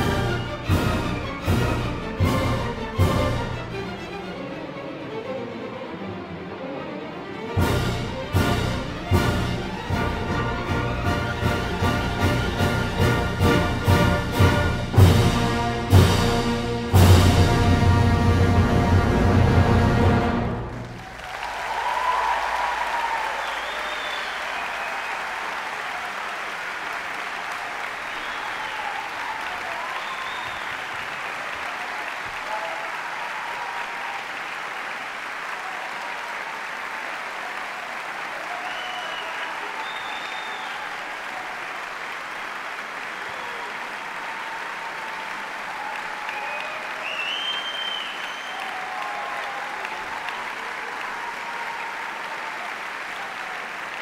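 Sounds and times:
audience applauding: 0.0s - 4.4s, 7.6s - 54.0s
cheers and shouts: 20.6s - 54.0s.

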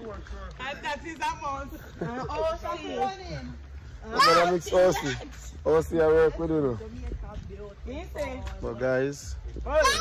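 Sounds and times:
people talking and laughing: 0.0s - 10.0s.

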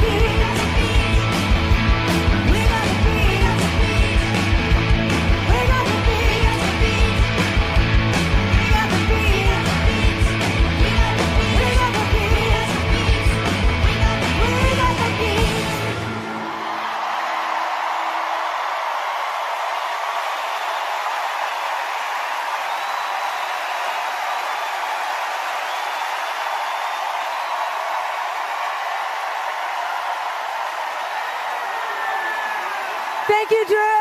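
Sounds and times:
rock band music: 0.0s - 16.9s
audience applauding: 0.0s - 34.0s.

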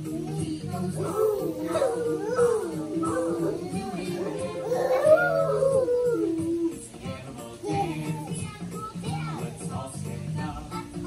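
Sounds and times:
dog-like howl: 0.9s - 6.8s.

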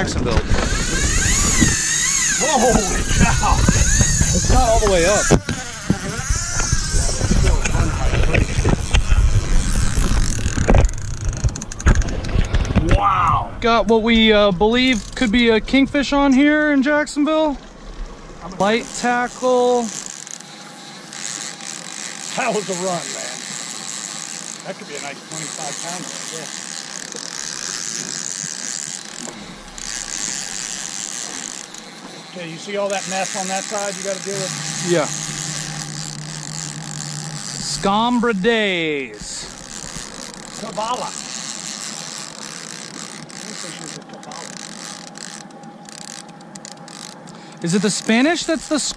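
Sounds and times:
wind on microphone: 0.0s - 16.3s
handling rumble: 0.0s - 19.0s, 26.4s - 44.4s
fishing reel drag buzzing: 0.4s - 12.6s, 14.7s - 15.6s, 17.6s - 48.9s.

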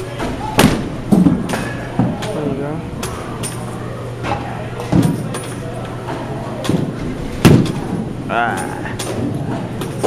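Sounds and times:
steady low hum: 0.0s - 10.0s
ball impacts in batting cage: 0.2s - 2.4s, 6.0s - 8.1s.

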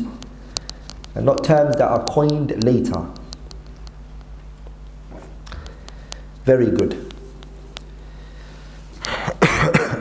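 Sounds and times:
man coughing: 9.1s - 10.0s.

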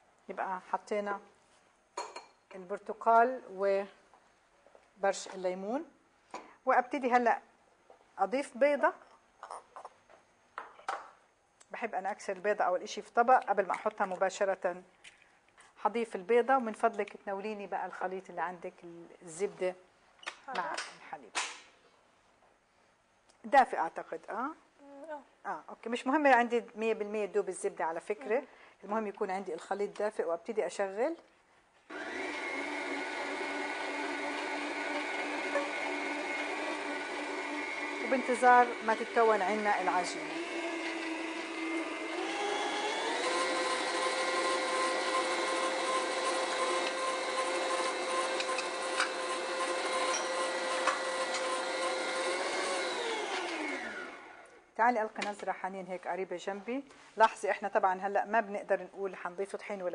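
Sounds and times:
stand mixer motor humming: 31.9s - 38.0s, 40.2s - 54.4s.

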